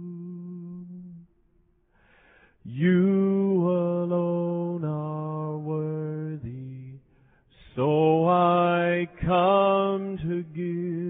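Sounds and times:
man singing unaccompanied: 0.0s - 1.2s, 2.7s - 11.0s.

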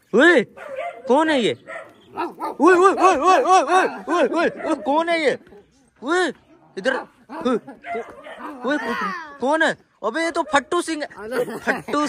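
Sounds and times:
short bark-like yelps: 0.6s - 1.1s.

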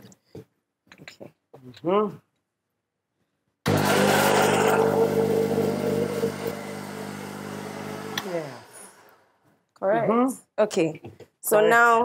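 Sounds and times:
motor winding down: 3.7s - 9.2s
electric blender running: 3.7s - 9.3s
blender switch click: 8.1s - 8.3s.

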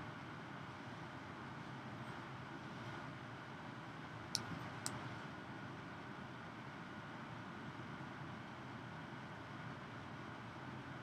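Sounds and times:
faint high hum: 0.0s - 11.0s.

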